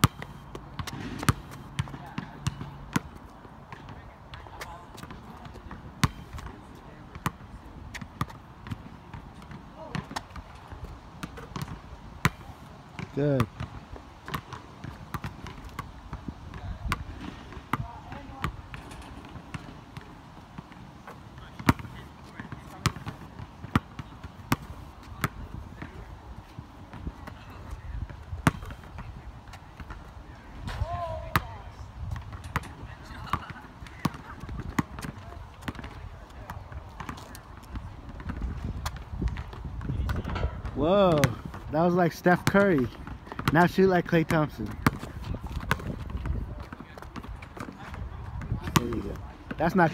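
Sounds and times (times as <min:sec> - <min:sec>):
basketball bouncing on asphalt: 0:00.0 - 0:49.9.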